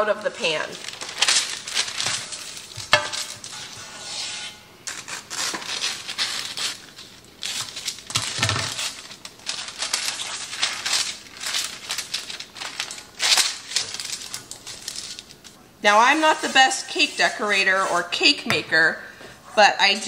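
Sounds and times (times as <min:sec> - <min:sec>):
parchment paper rustling: 0:00.0 - 0:18.3
scissors cutting paper: 0:04.9 - 0:15.2.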